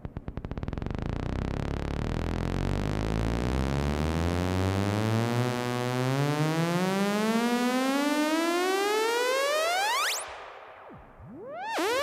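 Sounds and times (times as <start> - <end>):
buzzy synth tone rising: 1.2 - 12.0.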